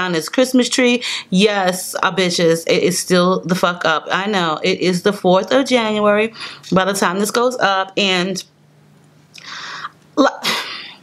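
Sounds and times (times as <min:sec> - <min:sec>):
woman talking: 0:00.0 - 0:08.5, 0:10.2 - 0:11.0.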